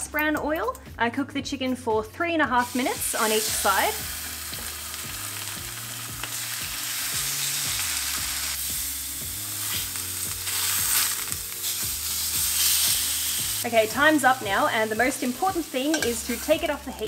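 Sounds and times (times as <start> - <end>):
chicken sizzling in a frying pan: 2.6 - 17.0
metal tongs clicking on pan: 15.8 - 17.0.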